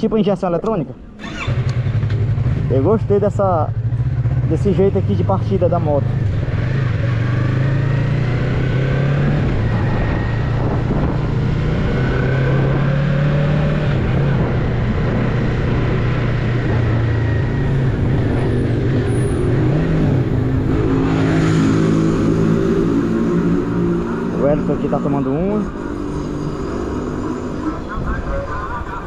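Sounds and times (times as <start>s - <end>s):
motorcycle engine running: 1.2s - 11.8s
wind rushing: 8.3s - 24.4s.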